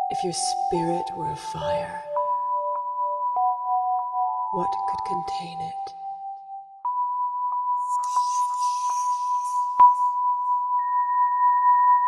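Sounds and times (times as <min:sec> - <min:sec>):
higher electronic tone: 0:07.8 - 0:10.4
steady electronic tone: 0:07.8 - 0:10.9.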